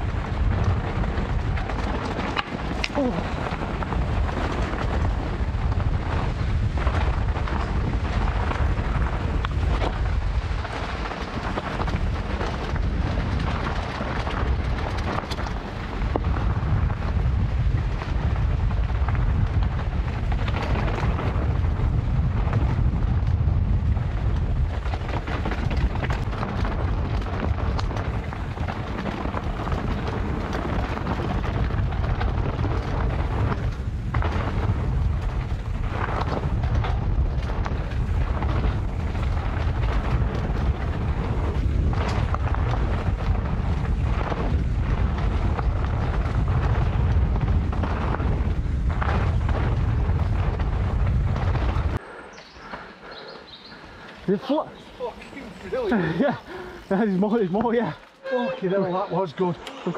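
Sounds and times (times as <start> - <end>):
bike knocks and rattles: 0.0 - 52.0
bike tyres rumbling on dirt: 0.0 - 59.5
wind buffeting microphone: 0.0 - 59.6.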